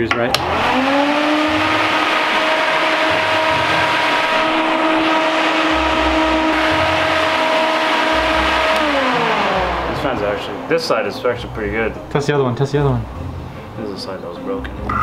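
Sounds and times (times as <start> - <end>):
electric fan running: 0.0 - 15.0.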